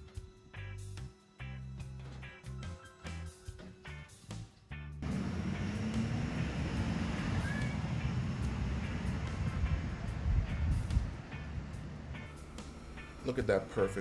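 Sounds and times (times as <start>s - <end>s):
truck engine rumbling: 5.0s - 14.0s.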